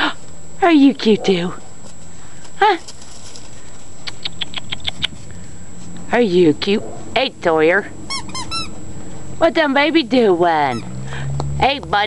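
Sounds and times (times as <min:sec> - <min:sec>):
steady background hiss: 0:00.0 - 0:12.0
puppies scrabbling on gravel: 0:01.7 - 0:04.0.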